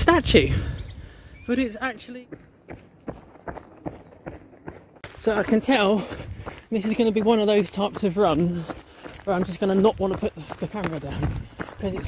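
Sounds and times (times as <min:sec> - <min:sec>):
running footsteps: 0:02.0 - 0:12.0.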